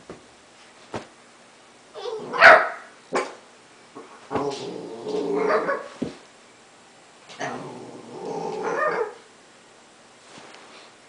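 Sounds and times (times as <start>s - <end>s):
puppy barking: 2.3s - 3.3s.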